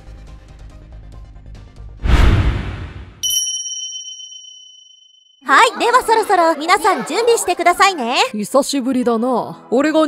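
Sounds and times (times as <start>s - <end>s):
whoosh: 2.0s - 3.2s
bright bell ding: 3.2s - 5.4s.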